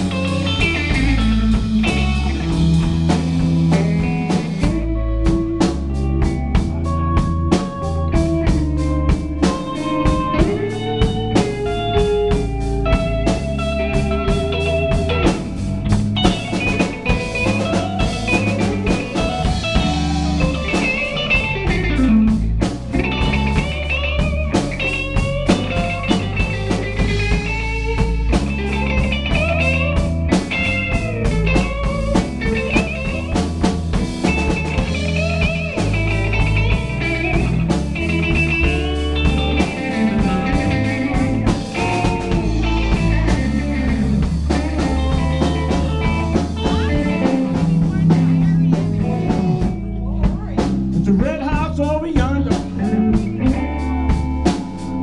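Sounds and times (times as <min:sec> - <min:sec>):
blues-rock band playing: 0:00.0 - 0:55.0
electric guitar lead with bent notes: 0:00.0 - 0:55.0.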